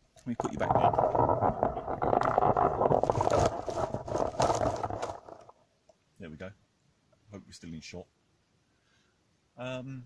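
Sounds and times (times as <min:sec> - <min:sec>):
camera rubbing against microphone: 0:00.3 - 0:05.6.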